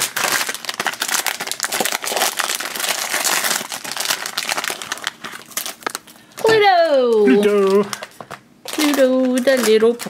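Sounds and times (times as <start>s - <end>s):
foil packet crinkling: 0.0s - 10.0s.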